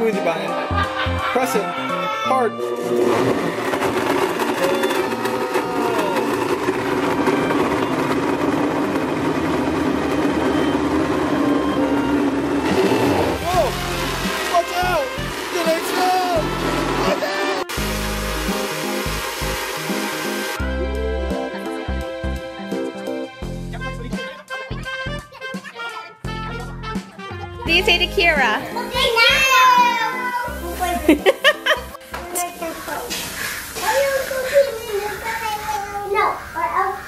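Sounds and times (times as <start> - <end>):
background music with a beat: 0.0 - 30.0
blender motor whirring: 2.5 - 20.6.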